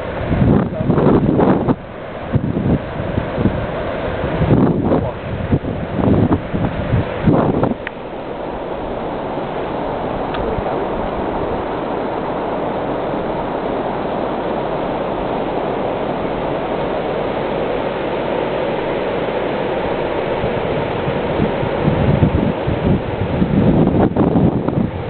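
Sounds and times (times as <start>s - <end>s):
wind buffeting microphone: 0.0s - 17.8s, 18.8s - 25.0s
river water pouring over a weir: 0.0s - 25.0s.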